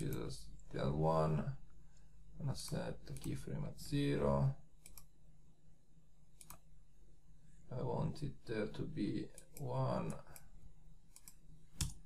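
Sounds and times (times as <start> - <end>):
faint steady hum: 0.0 - 12.0
mouse and keyboard clicks: 4.8 - 5.1, 6.4 - 6.7, 11.1 - 12.0.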